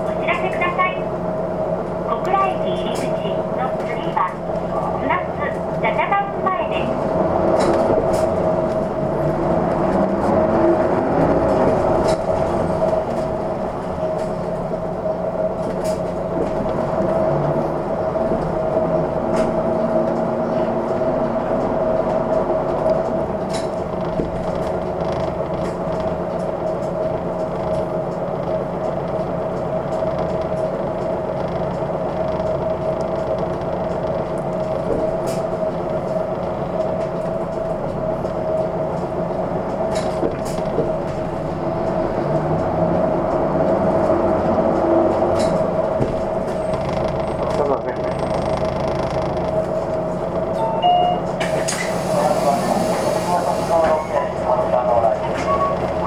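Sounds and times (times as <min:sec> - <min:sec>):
bus diesel engine running: 0:00.0 - 0:56.0.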